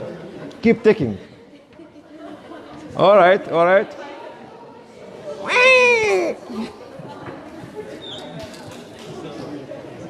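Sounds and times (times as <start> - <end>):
high-pitched vocal cry: 5.4 - 6.7.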